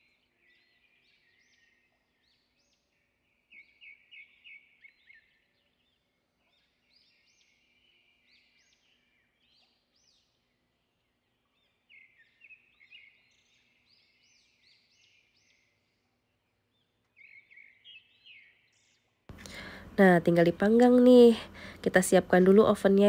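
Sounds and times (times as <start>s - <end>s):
faint bird chirps: 0.0s - 23.0s.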